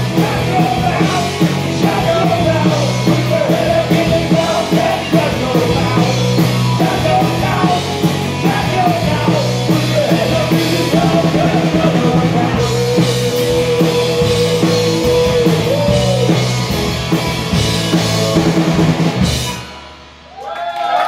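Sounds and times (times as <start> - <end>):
person singing: 0.0 - 16.8, 17.9 - 18.9
bass guitar: 0.0 - 20.4
electric guitar: 0.0 - 20.4
drum kit: 0.0 - 20.7.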